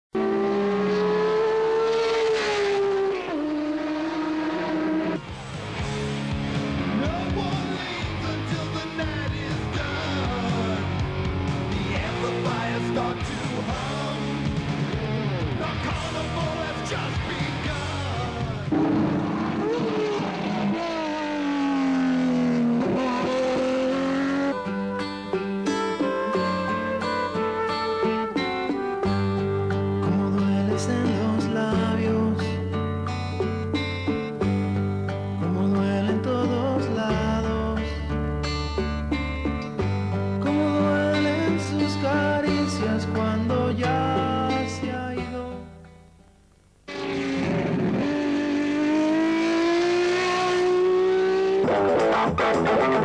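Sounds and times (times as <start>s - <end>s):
race car engine at high revs: 0.2s - 5.4s, 18.6s - 24.6s, 46.9s - 53.0s
music with strummed rhythm: 5.1s - 19.4s, 23.2s - 46.5s, 50.6s - 53.0s.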